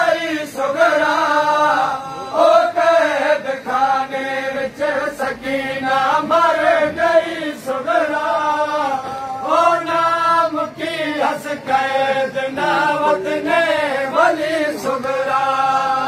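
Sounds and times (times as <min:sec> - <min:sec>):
men chanting a lament: 0:00.0 - 0:16.0.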